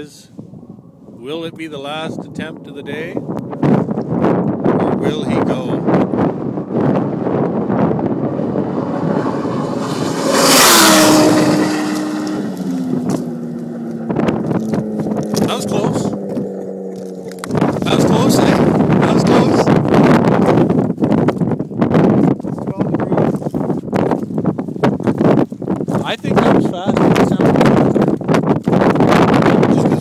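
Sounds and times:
wind buffeting microphone: 0.0s - 30.0s
snowmobile engine running: 3.2s - 21.2s.

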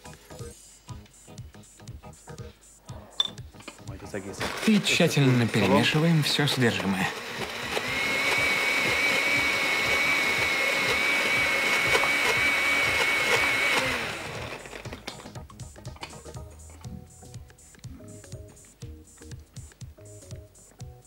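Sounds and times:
blender whining: 4.4s - 15.3s.

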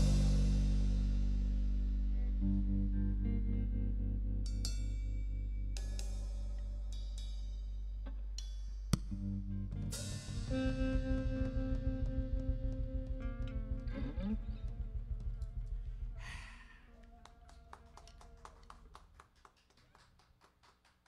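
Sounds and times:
live band holding a chord: 0.0s - 1.8s
cymbal wash: 0.0s - 2.3s.

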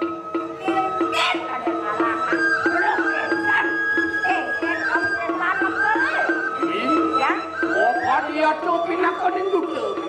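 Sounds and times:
gamelan ensemble playing: 0.0s - 10.0s.

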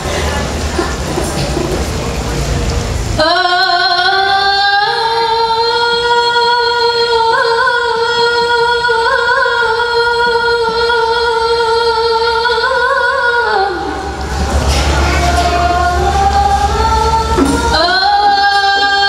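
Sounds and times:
woman singing long note: 3.2s - 19.0s.

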